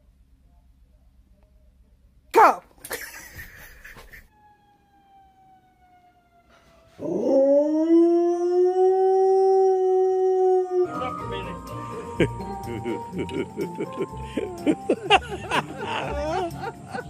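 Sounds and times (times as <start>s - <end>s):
dog howling: 6.9s - 11.3s
music: 10.8s - 17.0s.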